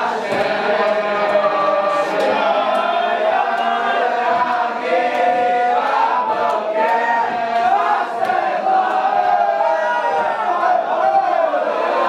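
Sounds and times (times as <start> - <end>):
boys singing in unison: 0.0 - 12.0.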